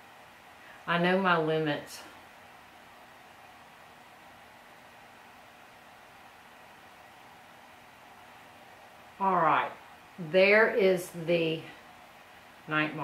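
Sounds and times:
faint room tone hiss: 0.0s - 13.0s.

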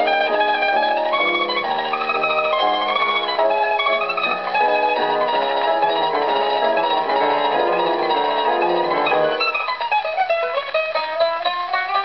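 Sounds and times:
solo mandolin melody: 0.0s - 12.0s.

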